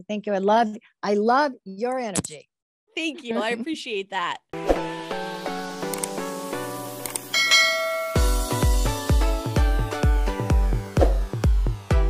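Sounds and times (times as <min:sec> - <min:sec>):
outro music: 0:04.6 - 0:12.0
ringing bell chime: 0:07.3 - 0:08.7.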